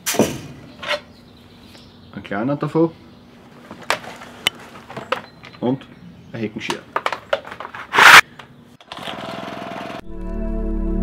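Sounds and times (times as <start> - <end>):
background music with drone: 10.0 - 11.0.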